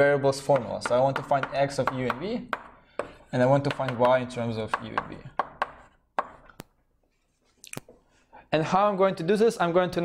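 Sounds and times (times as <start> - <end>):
chalk tapping on blackboard: 0.4 - 6.7.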